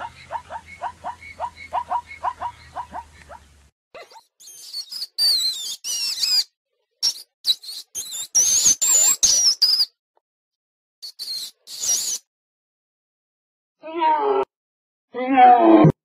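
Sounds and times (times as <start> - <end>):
short rhythmic animal calls: 0.0 - 5.2
elephant shrew squeaking: 4.0 - 9.9, 11.0 - 12.3.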